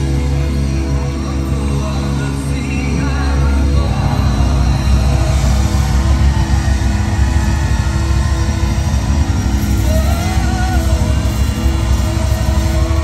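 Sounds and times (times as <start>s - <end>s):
live rock band playing loudly: 0.0s - 13.0s.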